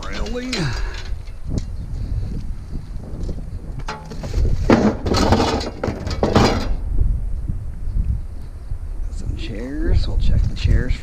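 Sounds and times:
scrap scraping and clattering: 0.0s - 1.3s, 3.8s - 6.8s.

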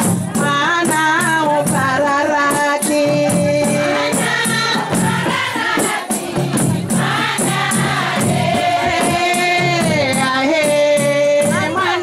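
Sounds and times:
woman singing into microphone: 0.0s - 5.9s, 8.0s - 12.0s
rattling hand percussion: 0.0s - 12.0s
chorus of women singing: 3.4s - 12.0s.

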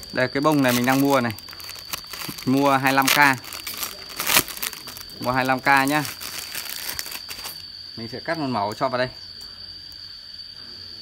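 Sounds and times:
plastic packet crinkling: 0.0s - 7.6s.

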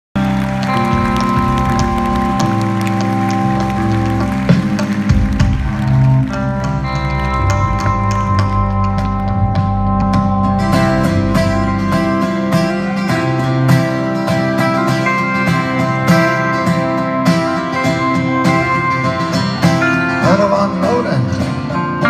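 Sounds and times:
live band playing: 0.2s - 22.0s.

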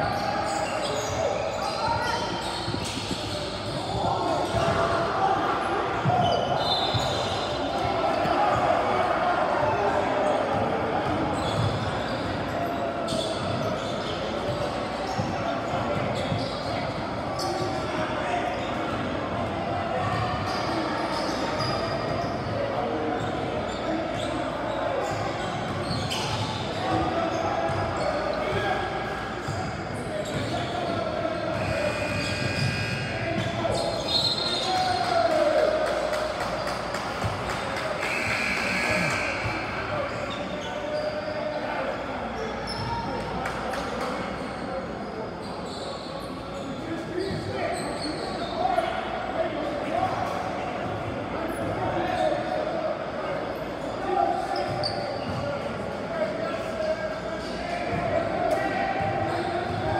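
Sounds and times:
many voices in a gym: 0.0s - 59.9s.

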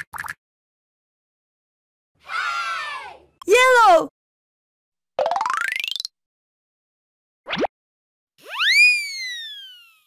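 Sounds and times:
cartoon whistle swoop: 8.4s - 10.0s.

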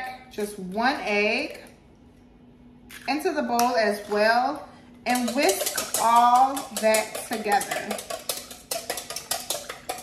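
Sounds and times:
whisk clicking against metal bowl: 5.1s - 10.0s.

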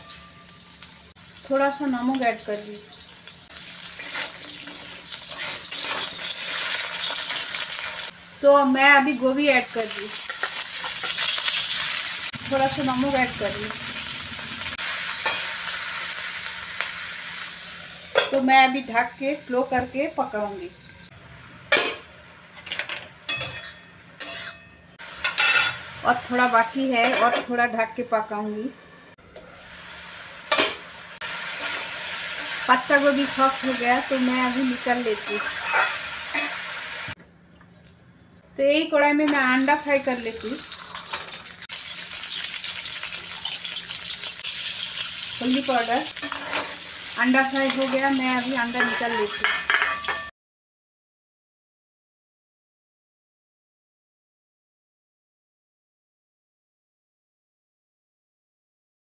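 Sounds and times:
vegetables sizzling quietly: 0.0s - 23.4s, 24.1s - 28.8s, 29.4s - 38.0s, 39.3s - 49.8s
spatula scraping a pan: 35.2s - 36.6s, 46.2s - 46.9s.

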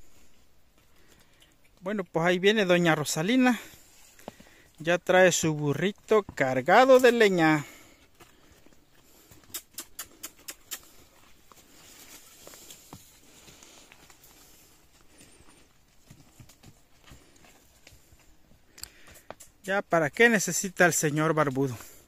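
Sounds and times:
donkey hooves on dirt: 0.0s - 22.0s.

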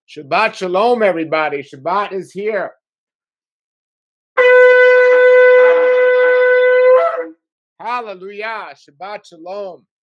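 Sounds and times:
shofar blast: 4.4s - 7.4s.

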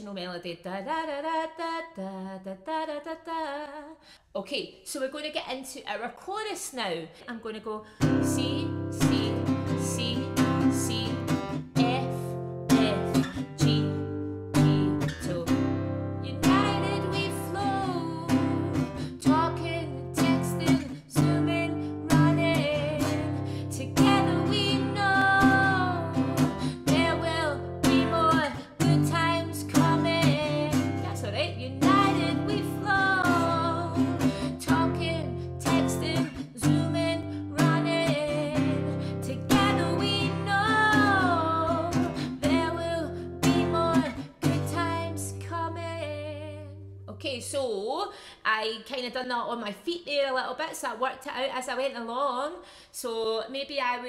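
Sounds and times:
woman singing: 0.0s - 54.0s
acoustic guitar strummed: 8.0s - 45.4s.

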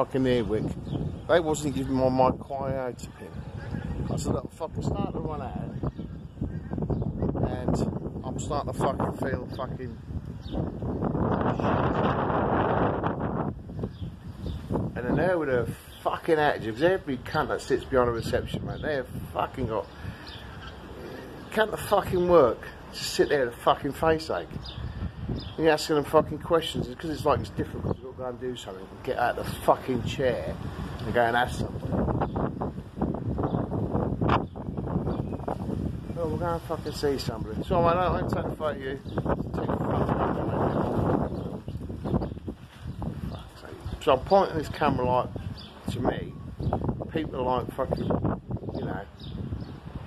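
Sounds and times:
wind buffeting microphone: 0.0s - 50.0s.

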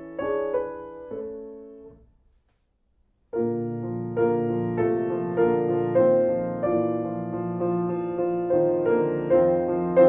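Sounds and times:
piano chords with bass notes: 0.0s - 2.2s, 3.3s - 10.0s.

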